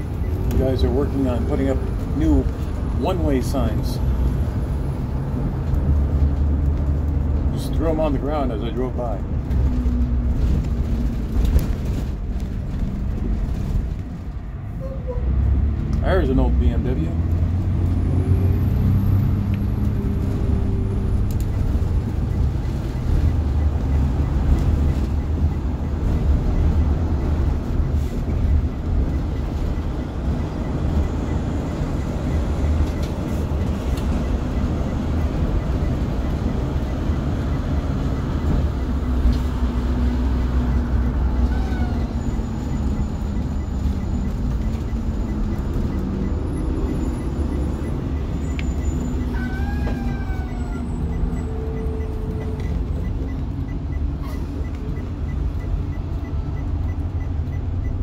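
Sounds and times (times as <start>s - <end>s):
bus engine and road rumble: 0.0s - 58.0s.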